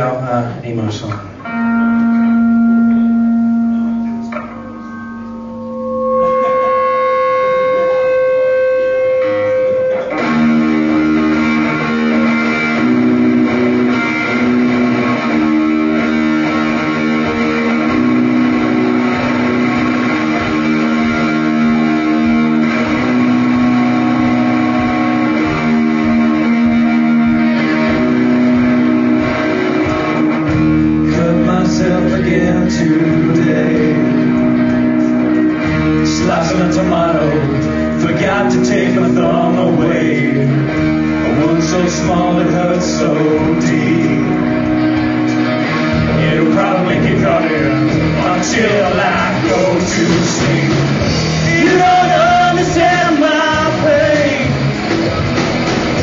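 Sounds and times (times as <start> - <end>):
live rock band playing: 1.2 - 56.0.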